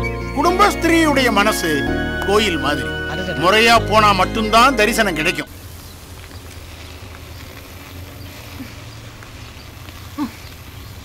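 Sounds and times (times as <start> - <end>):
faint background haze: 0.0 - 7.1.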